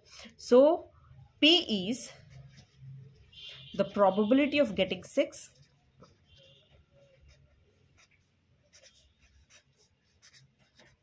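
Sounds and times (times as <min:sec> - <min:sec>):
marker writing on paper: 0:05.4 - 0:11.0.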